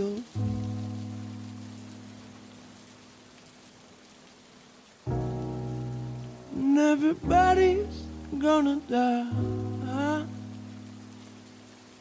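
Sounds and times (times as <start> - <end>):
steady rain hiss: 0.0 - 12.0
slowed-down song chords: 5.1 - 11.9.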